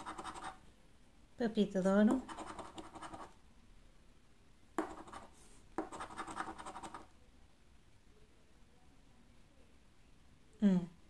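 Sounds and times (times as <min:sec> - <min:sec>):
coin scratching scratch card: 0:00.0 - 0:00.6, 0:02.2 - 0:03.3, 0:04.8 - 0:07.0.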